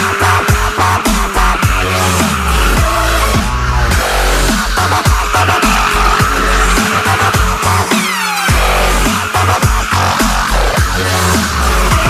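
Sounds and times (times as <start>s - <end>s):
electronic dance music: 0.0s - 12.0s
tyres squealing on concrete: 0.0s - 12.0s.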